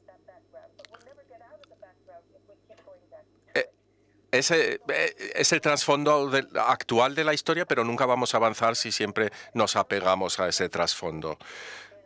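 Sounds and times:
faint background speech: 4.4s - 6.9s.

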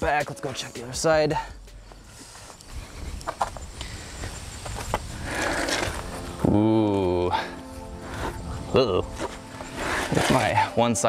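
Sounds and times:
footsteps on pavement: 1.4s - 6.3s.

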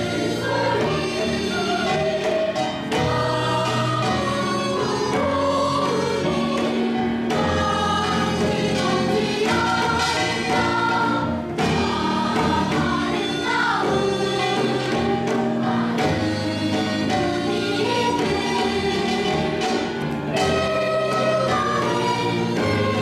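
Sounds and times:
children's choir singing: 0.0s - 23.0s
traditional instrumental accompaniment: 0.0s - 23.0s.

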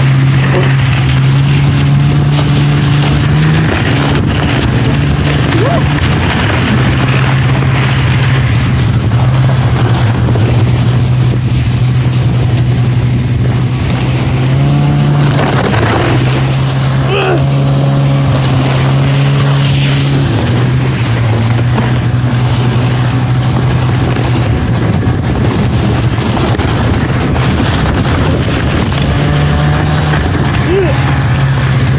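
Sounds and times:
constant rushing noise: 0.0s - 31.9s
snowmobile engine running: 0.0s - 31.9s.

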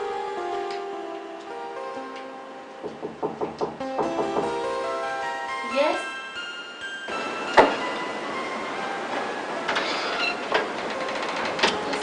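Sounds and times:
faint held music tones: 0.0s - 12.0s
steady noisy hiss: 0.0s - 12.0s.

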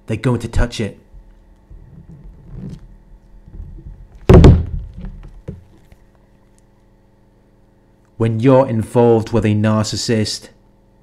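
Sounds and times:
loud thump: 3.5s - 5.6s.

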